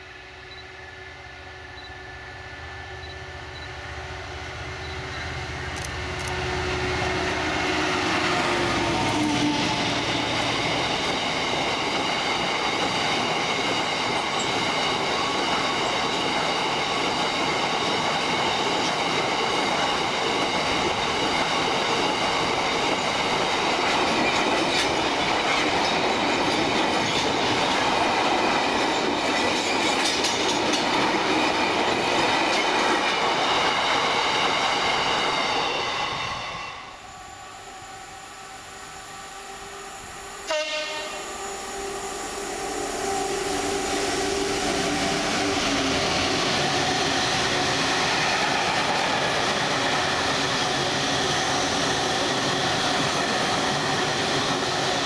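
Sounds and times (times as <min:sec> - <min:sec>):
diesel locomotive passing: 0:00.0 - 0:55.0.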